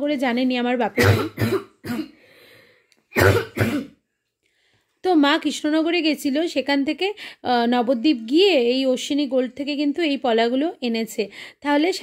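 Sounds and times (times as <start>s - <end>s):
person coughing: 1.0s - 2.2s, 3.2s - 4.0s.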